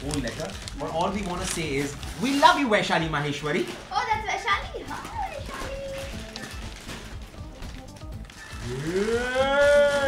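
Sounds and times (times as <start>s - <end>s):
person cooing in delight: 8.8s - 10.0s.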